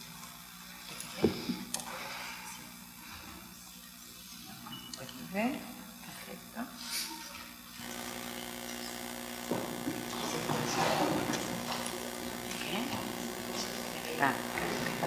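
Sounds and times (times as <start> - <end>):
room hum and hiss: 0.0 - 15.0
two people talking quietly: 0.9 - 15.0.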